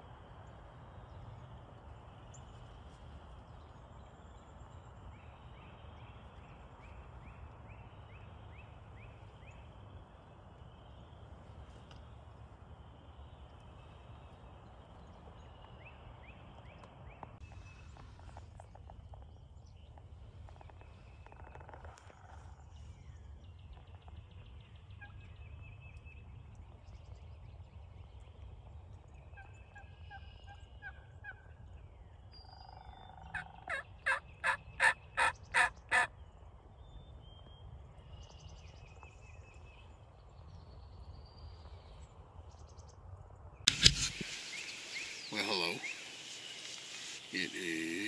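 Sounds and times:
faint songbird chirps: 0:00.1 - 0:48.0
wild turkey calling: 0:32.6 - 0:36.1, 0:43.7 - 0:48.0.

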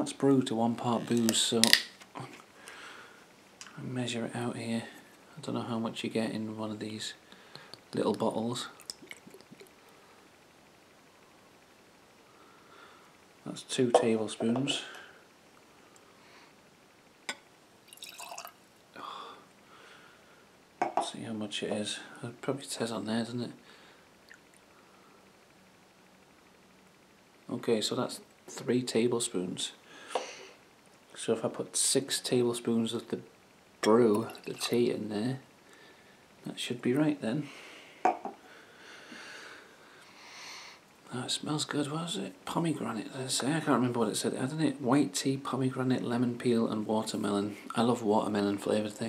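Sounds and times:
liquid trickling into glass: 0:17.9 - 0:18.6.

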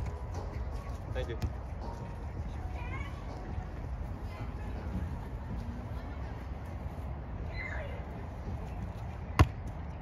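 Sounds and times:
ball smack: 0:09.4 - 0:09.6.

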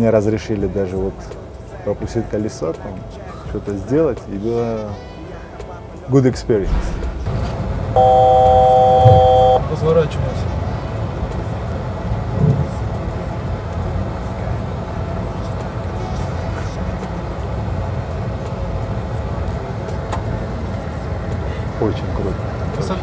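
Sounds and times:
jet engine and airflow rumble: 0:06.5 - 0:23.0
faint hum: 0:07.0 - 0:21.8.

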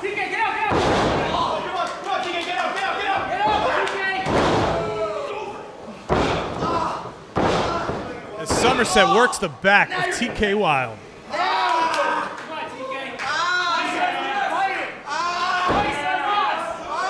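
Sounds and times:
voices: 0:00.0 - 0:17.0
bodies slamming onto wrestling mat: 0:00.7 - 0:01.5, 0:06.1 - 0:08.2.

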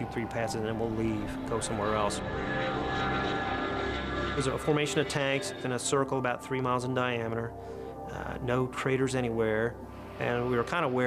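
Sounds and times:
jet engines whining overhead: 0:00.8 - 0:05.8.

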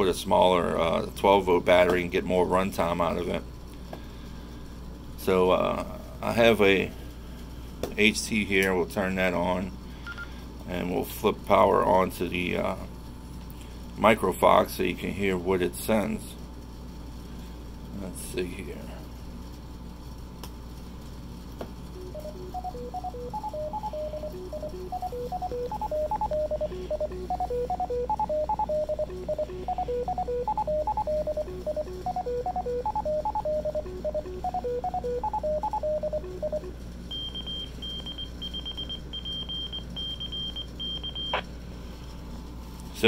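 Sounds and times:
morse code beeps: 0:10.1 - 0:10.3, 0:22.0 - 0:41.4
short stepping tones from radio: 0:22.0 - 0:39.5.

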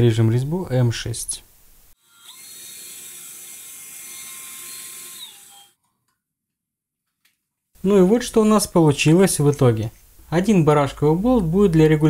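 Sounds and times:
electric drill whining: 0:02.0 - 0:05.8.

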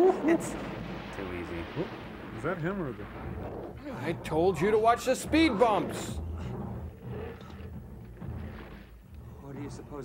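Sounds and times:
low explosion rumble: 0:00.0 - 0:10.0.

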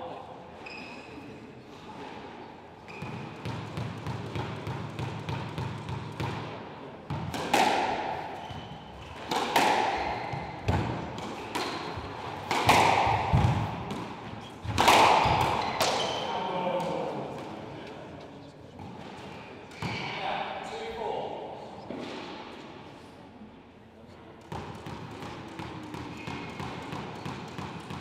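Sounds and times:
squash racket and wall impacts: 0:01.7 - 0:18.0, 0:18.8 - 0:20.2, 0:24.4 - 0:28.0.

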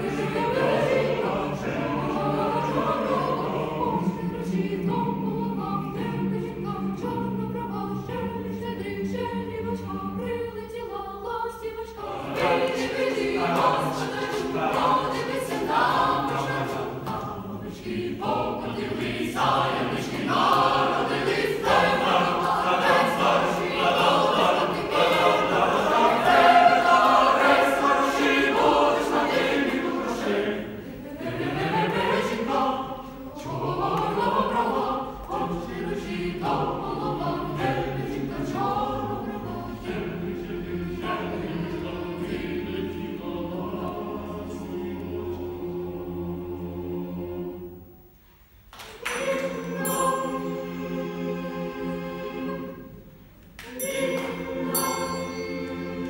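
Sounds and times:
choir singing a carol unaccompanied: 0:00.0 - 0:56.0.

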